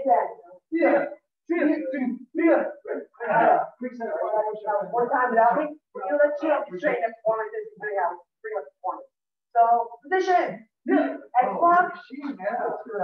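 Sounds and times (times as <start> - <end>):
person talking: 0.0 - 13.0.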